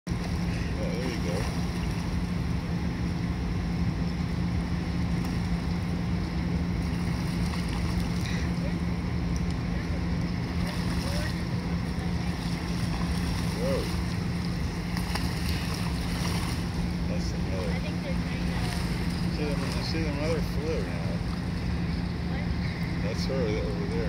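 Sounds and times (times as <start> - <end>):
low hum: 0.1 - 24.0
rushing outdoor noise: 0.1 - 24.0.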